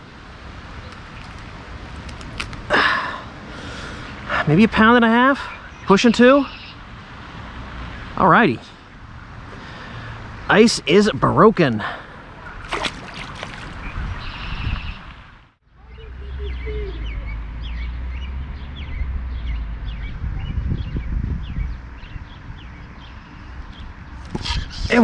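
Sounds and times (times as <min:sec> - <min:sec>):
birds chirping: 0:00.6 - 0:07.1, 0:07.8 - 0:25.0
wind rumbling on microphone: 0:12.2 - 0:25.0.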